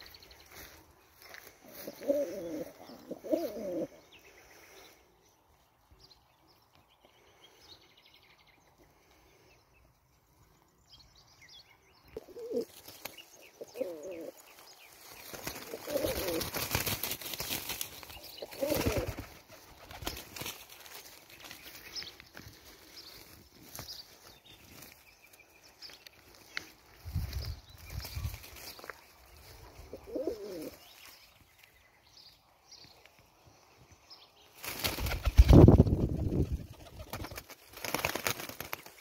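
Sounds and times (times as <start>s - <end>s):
small birds chirping: 0.0s - 39.0s
pigeon cooing: 1.7s - 4.0s, 12.2s - 12.7s, 13.6s - 14.3s, 15.6s - 16.5s, 18.4s - 19.2s, 29.8s - 30.8s
crackling rustling noise: 12.6s - 31.8s.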